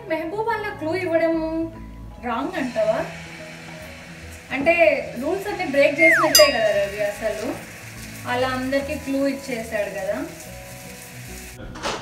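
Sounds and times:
food sizzling on a griddle: 0:00.3 - 0:05.5, 0:07.7 - 0:12.0
melody: 0:06.0 - 0:07.2.

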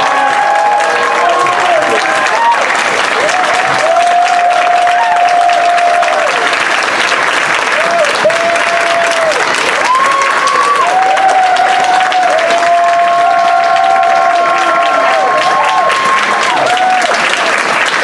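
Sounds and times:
crowd clapping: 0:00.0 - 0:18.0.

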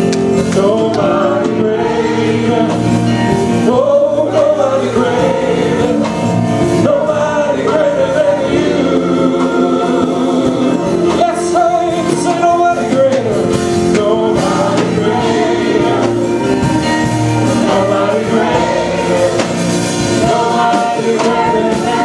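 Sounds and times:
choir singing in harmony: 0:00.0 - 0:22.0
electric keyboard chords: 0:00.0 - 0:22.0.

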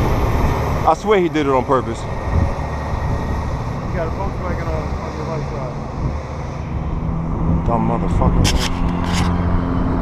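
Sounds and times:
road noise: 0:00.0 - 0:10.0
vehicle engine drone: 0:00.0 - 0:10.0.

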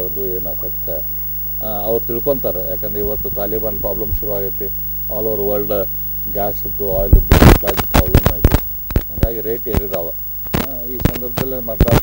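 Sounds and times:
man speaking: 0:00.0 - 0:01.0, 0:01.6 - 0:12.0
mains hum: 0:00.0 - 0:12.0
microphone being handled: 0:02.9 - 0:04.4, 0:06.8 - 0:12.0.

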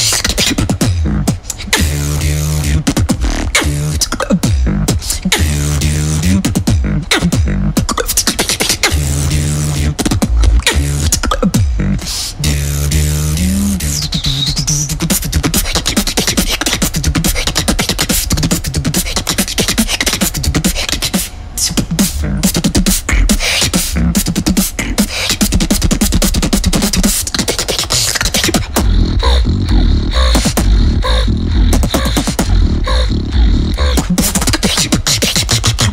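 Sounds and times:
vocal beatboxing: 0:00.0 - 0:35.9
deep sustained bass: 0:00.8 - 0:07.8, 0:08.9 - 0:15.4, 0:28.8 - 0:34.2.

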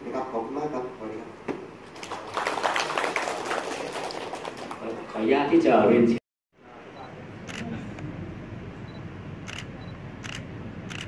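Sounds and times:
camera shutter clicks: 0:09.5 - 0:11.0.

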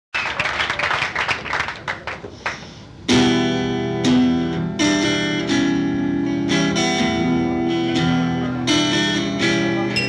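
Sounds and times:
audience applauding: 0:00.2 - 0:02.6.

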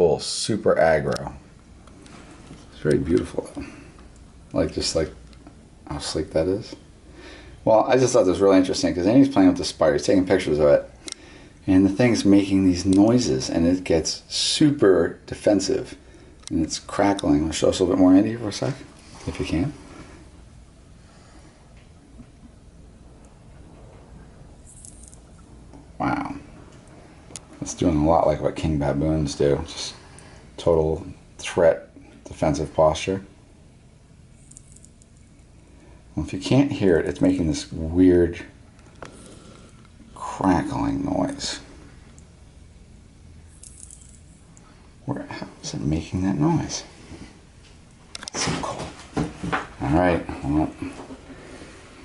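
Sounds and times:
low steady hum: 0:00.0 - 0:52.0.

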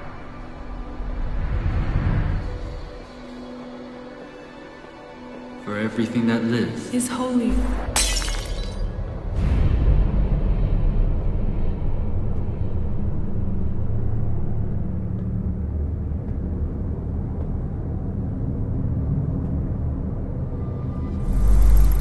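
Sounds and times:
low rumbling drone: 0:09.1 - 0:22.0.

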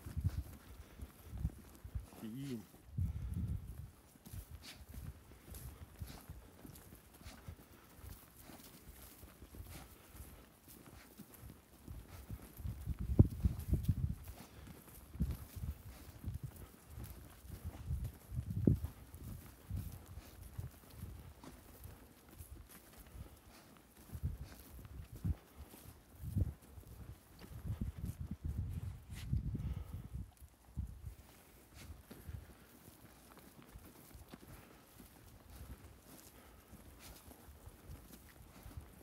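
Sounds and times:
footsteps on loose soil: 0:00.0 - 0:39.0.

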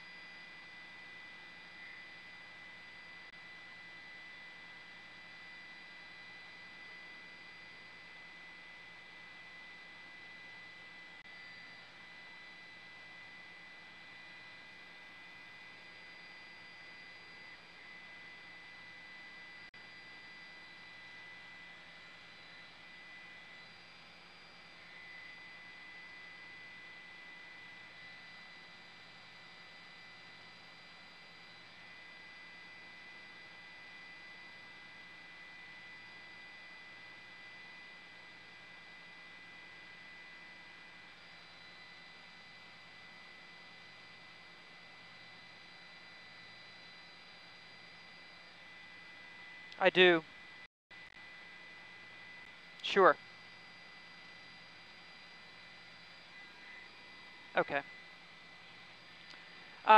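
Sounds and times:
thin high electronic tones: 0:57.6 - 0:57.8.

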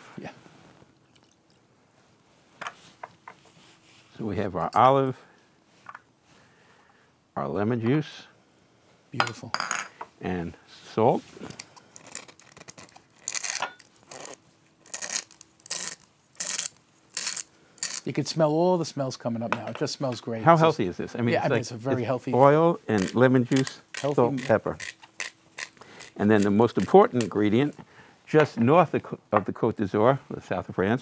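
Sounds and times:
hand grinder rasping: 0:13.2 - 0:18.1.

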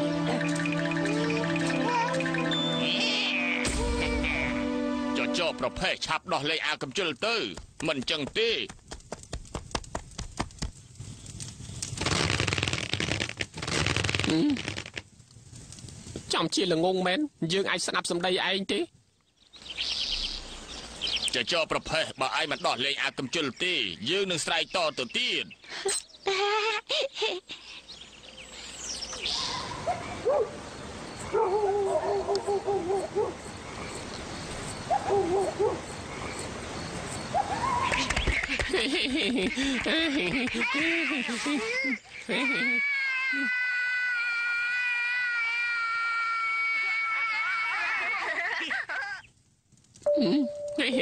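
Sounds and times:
wavering animal call: 0:00.0 - 0:04.7
background hiss: 0:00.0 - 0:51.0
cartoon crackling rattling noise: 0:07.2 - 0:15.2.

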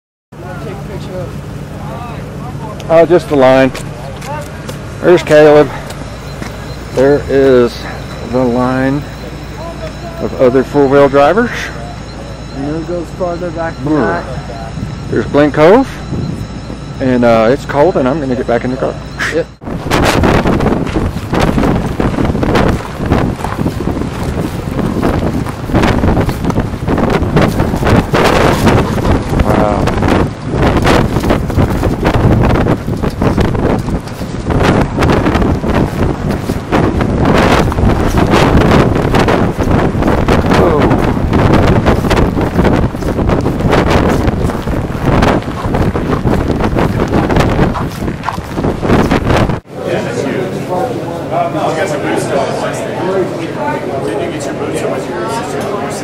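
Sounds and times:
wind buffeting microphone: 0:00.6 - 0:49.7.

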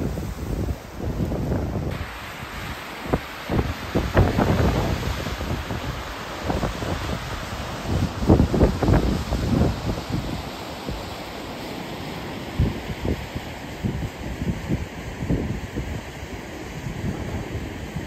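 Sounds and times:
wind buffeting microphone: 0:00.0 - 0:11.1, 0:12.5 - 0:18.0
waterfall rushing: 0:00.0 - 0:18.0.

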